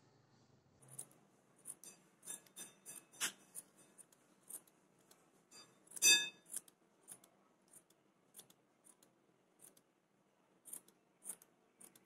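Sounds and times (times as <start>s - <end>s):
scissors snipping yarn: 0.8s - 5.2s, 5.8s - 9.9s, 10.6s - 12.0s.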